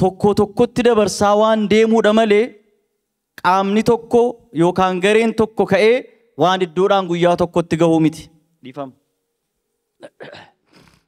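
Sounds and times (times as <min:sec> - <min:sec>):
man sniffling: 0:10.2 - 0:11.0.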